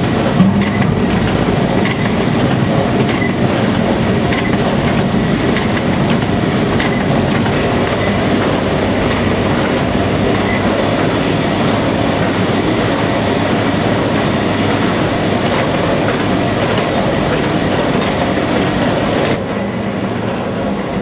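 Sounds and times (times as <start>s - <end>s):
factory machinery clattering: 0.0s - 21.0s.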